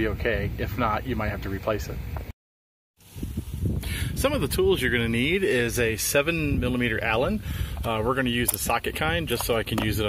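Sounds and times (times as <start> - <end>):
low outdoor rumble and hiss: 0.0 - 2.2.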